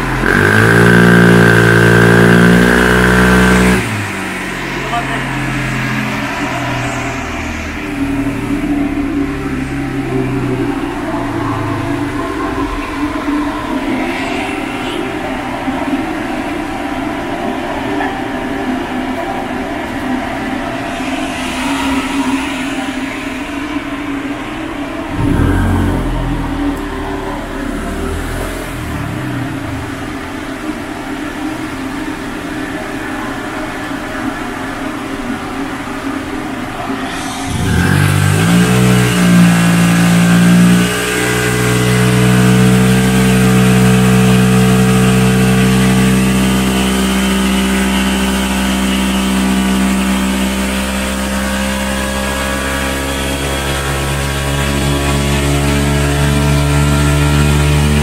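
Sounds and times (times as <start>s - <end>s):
scooter engine revving: 0.0s - 15.1s, 25.1s - 31.8s, 37.0s - 58.0s.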